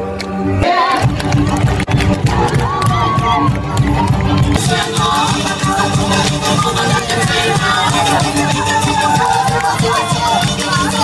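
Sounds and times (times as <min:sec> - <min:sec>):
band music playing: 0:00.0 - 0:11.0
crowd cheering and shouting: 0:00.0 - 0:11.0.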